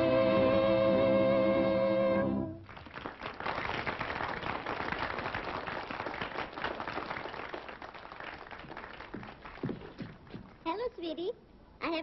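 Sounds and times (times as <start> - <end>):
crowd clapping: 2.6 - 10.6.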